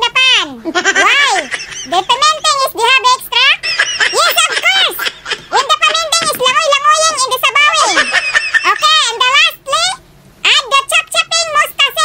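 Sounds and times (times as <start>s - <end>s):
high-pitched voice chattering: 0.0s - 12.0s.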